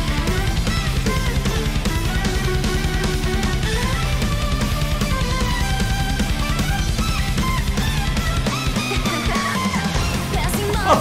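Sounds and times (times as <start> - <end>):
distorted guitar and bass: 0.0 - 11.0
symphonic metal song: 0.0 - 11.0.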